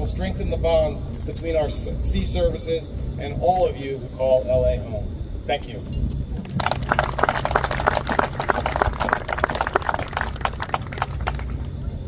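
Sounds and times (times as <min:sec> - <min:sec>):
steady low rumble: 0:00.0 - 0:12.0
audience applauding: 0:06.4 - 0:11.7.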